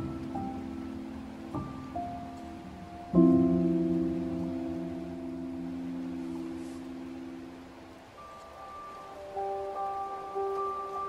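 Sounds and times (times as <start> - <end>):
soft piano chord: 0.0 - 11.0.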